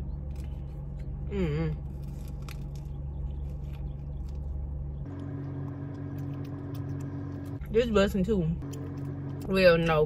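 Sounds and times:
low hum inside a car: 0:00.0 - 0:10.0
person chewing: 0:05.4 - 0:07.6.

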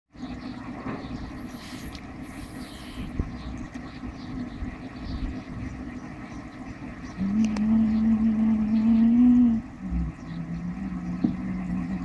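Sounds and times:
low hum: 0:00.2 - 0:12.0.

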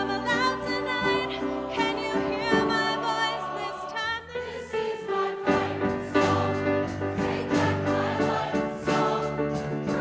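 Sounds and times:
choir singing a pop song: 0:00.0 - 0:10.0
piano accompaniment: 0:00.0 - 0:10.0.

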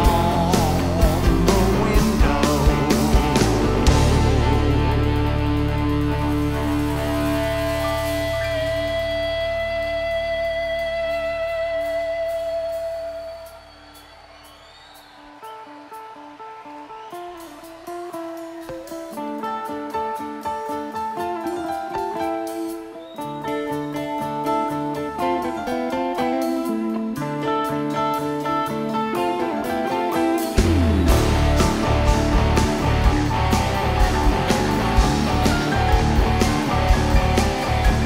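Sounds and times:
electric guitar picking notes: 0:00.0 - 0:13.6, 0:16.8 - 0:38.0
rock band playing: 0:00.0 - 0:38.0.

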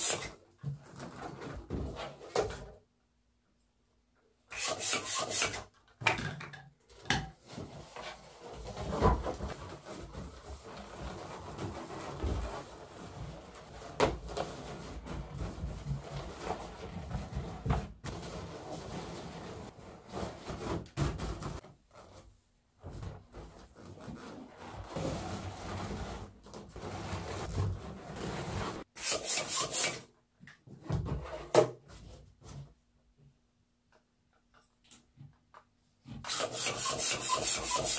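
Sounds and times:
balloons rubbing and squeaking: 0:00.0 - 0:00.4, 0:04.5 - 0:05.6, 0:07.8 - 0:30.1, 0:36.2 - 0:37.9.

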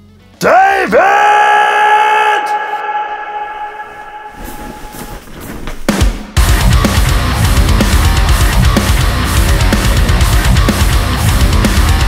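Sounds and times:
man yelling: 0:00.4 - 0:04.6.

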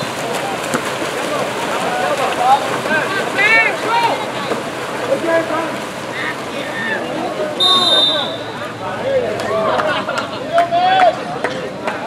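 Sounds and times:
voices shouting and calling: 0:00.0 - 0:11.4
water splashing in a pool: 0:00.0 - 0:12.0.

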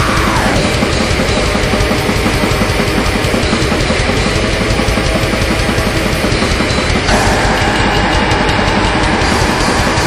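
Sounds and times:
distorted guitars: 0:00.0 - 0:10.0
fast dense drumming: 0:00.0 - 0:10.0.

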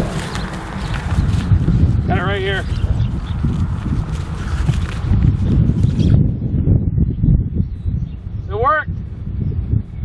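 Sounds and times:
footsteps through leafy plants: 0:00.0 - 0:06.0
wind buffeting microphone: 0:00.0 - 0:10.0.

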